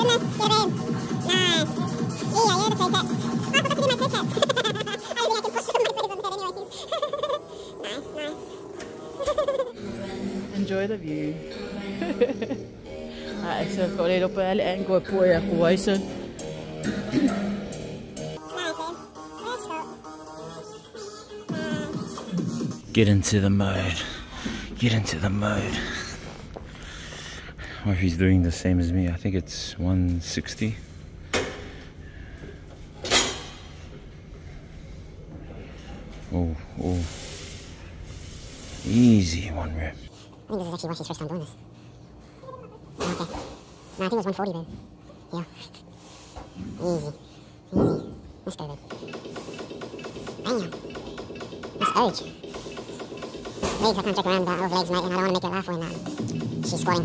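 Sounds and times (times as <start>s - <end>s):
steady low hum: 20.6s - 57.0s.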